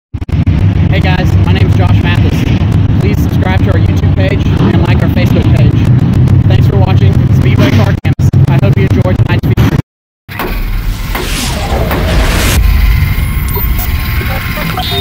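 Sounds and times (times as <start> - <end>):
race car engines: 0.2 - 8.5, 10.3 - 15.0.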